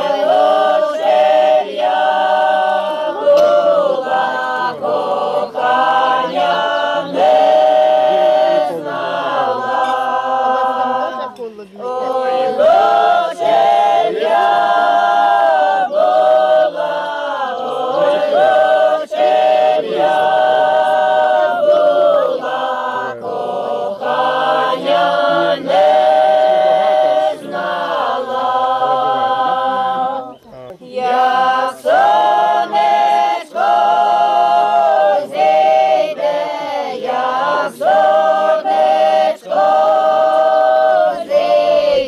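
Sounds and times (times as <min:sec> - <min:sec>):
voices singing unaccompanied: 0:00.0 - 0:42.0.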